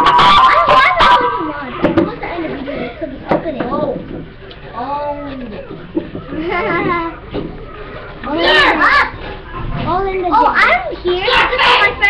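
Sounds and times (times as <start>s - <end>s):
children's high-pitched voices: 0.0s - 4.0s, 8.2s - 12.0s.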